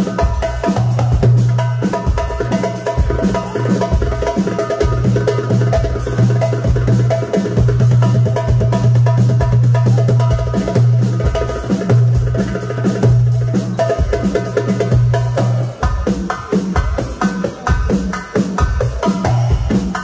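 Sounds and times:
darbuka drum strokes: 0:00.0 - 0:20.0.

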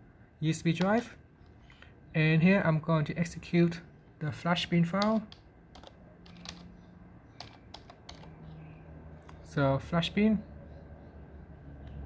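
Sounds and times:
computer keyboard key clicks: 0:05.0 - 0:06.7, 0:07.4 - 0:08.4.

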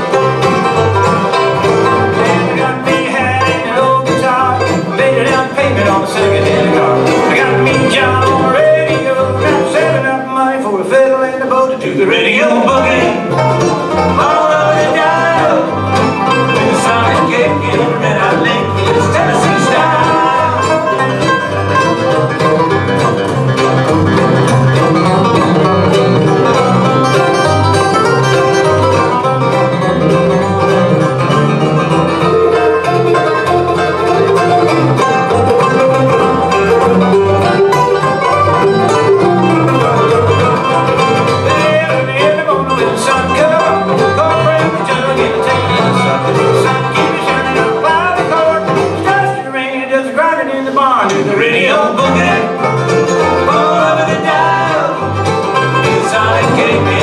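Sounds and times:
acoustic guitar: 0:00.0 - 0:57.0
banjo: 0:00.0 - 0:57.0
mandolin: 0:00.0 - 0:57.0
pulsing electric bass: 0:12.6 - 0:49.2.

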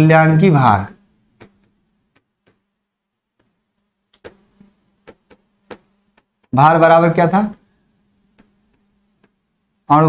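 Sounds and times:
faint steady hum: 0:00.0 - 0:10.0
pen tapping on board: 0:04.2 - 0:06.6.

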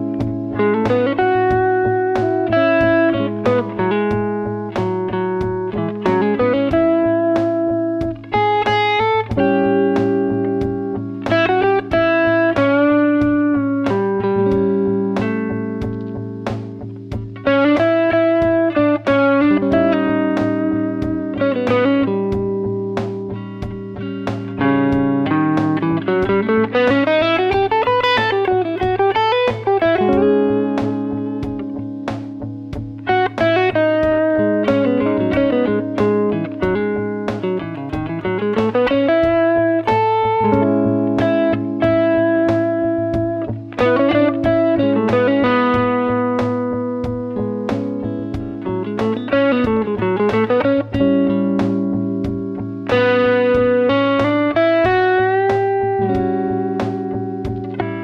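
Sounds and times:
drum beat: 0:00.0 - 0:58.0
electric guitar improvising: 0:00.0 - 0:58.0.

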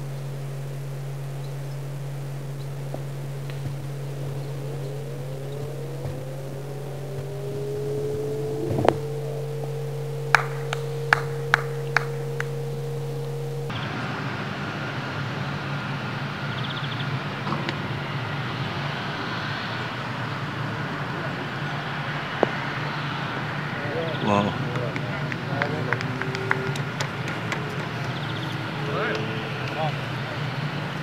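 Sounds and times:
steady hiss: 0:00.0 - 0:16.3
low engine-like drone: 0:00.0 - 0:31.0.

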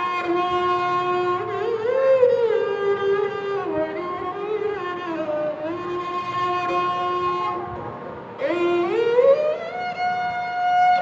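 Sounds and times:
sarangi held note: 0:00.0 - 0:11.0.

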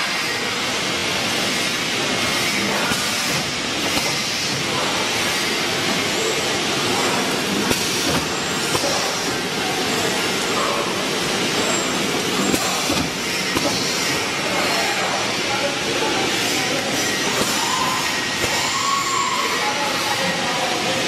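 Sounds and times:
machine fans and motors hissing: 0:00.0 - 0:21.0.

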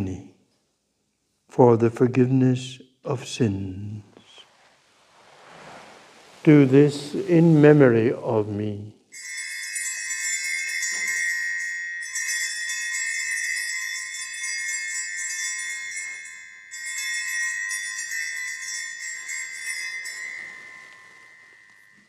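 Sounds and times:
small altar bells ringing: 0:09.1 - 0:22.0.

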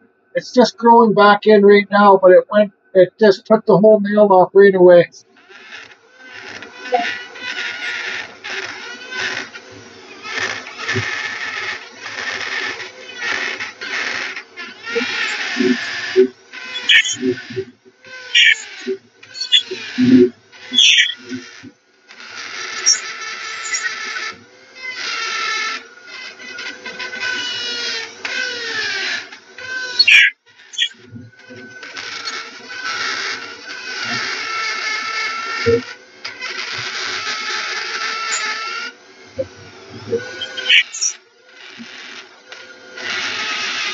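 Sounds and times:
rotary tool grinding wood: 0:05.2 - 0:43.9.

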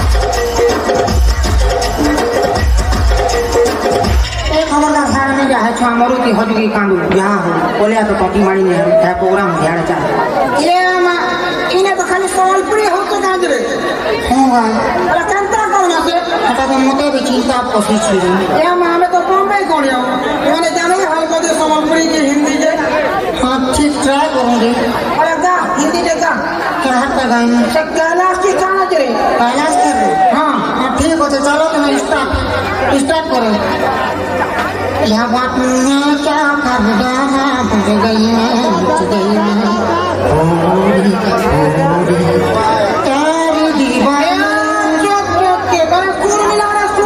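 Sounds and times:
voices talking over one another: 0:00.0 - 0:47.0.

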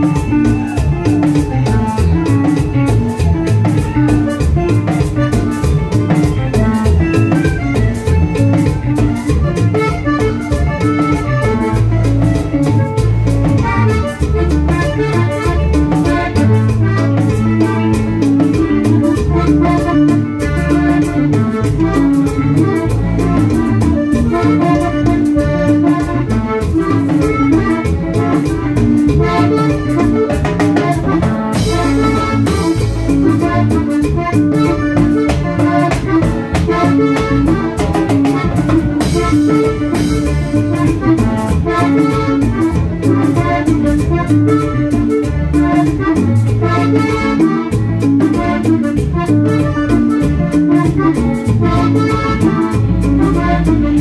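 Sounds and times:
button accordion melody: 0:00.0 - 0:54.0
drum kit: 0:00.0 - 0:54.0
low bass notes: 0:00.0 - 0:54.0.

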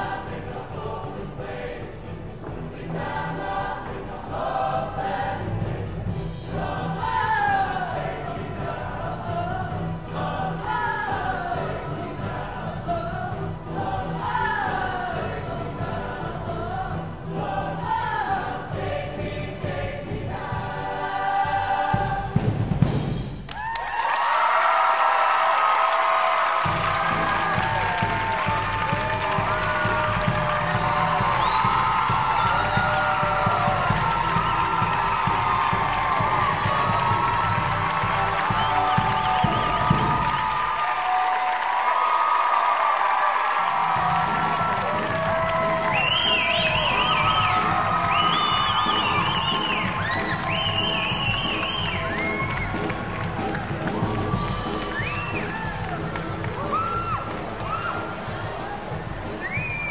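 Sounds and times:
choir singing in harmony: 0:00.0 - 0:23.0, 0:26.6 - 0:40.9, 0:43.9 - 0:55.6
band accompaniment: 0:00.0 - 0:23.6, 0:25.6 - 0:41.9, 0:43.0 - 0:59.9.

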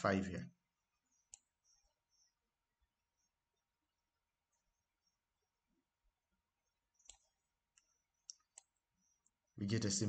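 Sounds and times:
computer mouse click: 0:01.1 - 0:01.7, 0:06.9 - 0:09.4.

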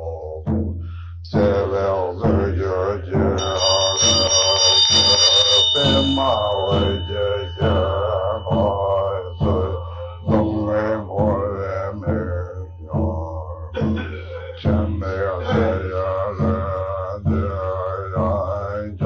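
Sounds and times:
man chanting: 0:00.0 - 0:19.0
high ringing tone: 0:03.4 - 0:12.6.

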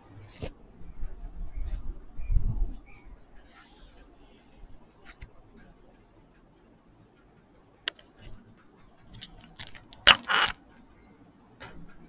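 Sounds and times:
small hard objects rattling: 0:09.1 - 0:10.6.

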